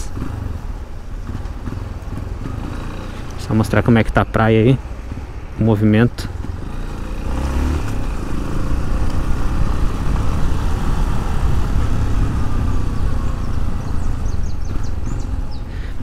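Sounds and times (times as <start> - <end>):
motorcycle engine at low speed: 0.0 - 16.0
road rumble: 0.0 - 16.0.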